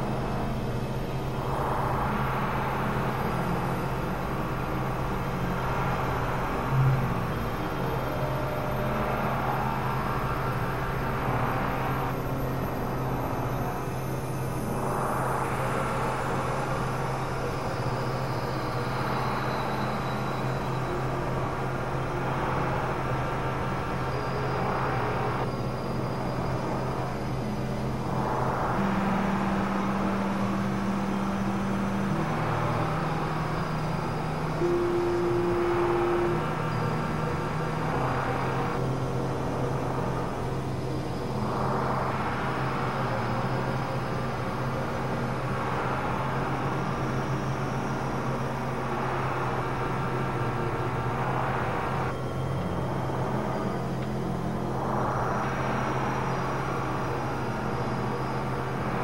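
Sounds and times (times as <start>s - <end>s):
low synthesizer drone: 0.0s - 59.0s
held synth notes: 31.9s - 38.8s.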